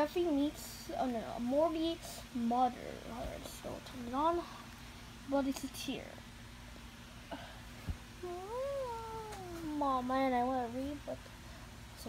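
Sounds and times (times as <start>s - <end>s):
child whining aww: 8.2s - 9.9s
child complaining speech: 8.2s - 11.2s.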